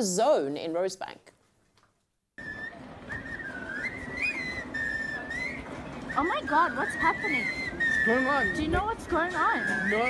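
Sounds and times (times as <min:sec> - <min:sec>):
busy shopping street noise: 0:02.4 - 0:10.0
people whistling a tune: 0:02.4 - 0:10.0.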